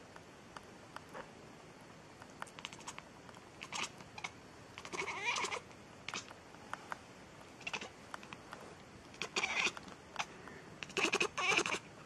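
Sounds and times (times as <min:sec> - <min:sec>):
cat meowing: 0:03.6 - 0:06.3, 0:09.2 - 0:11.8.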